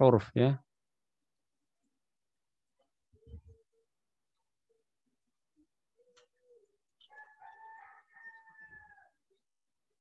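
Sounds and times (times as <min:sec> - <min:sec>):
rooster crowing: 0:07.1 - 0:09.2.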